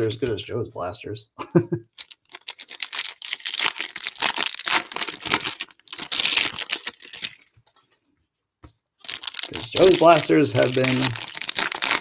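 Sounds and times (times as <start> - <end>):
foil pack tearing and crinkling: 2.0 - 7.5, 9.0 - 12.0.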